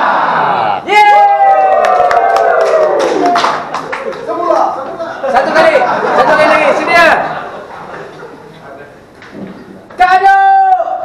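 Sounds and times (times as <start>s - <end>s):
crowd cheering: 0.0s - 7.5s
hand claps: 1.8s - 4.3s.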